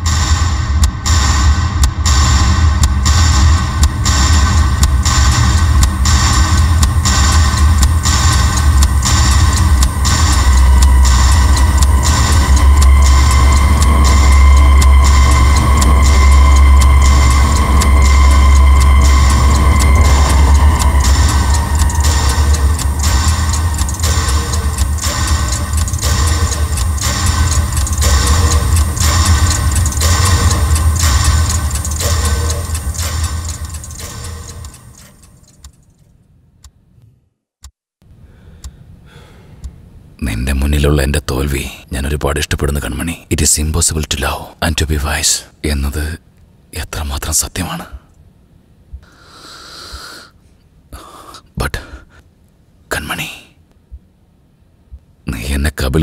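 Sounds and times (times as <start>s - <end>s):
high sustained tone: 0.0s - 35.2s
heavy low drone: 0.0s - 35.5s
pendulum wall clock ticking: 0.0s - 36.0s, 39.6s - 46.0s.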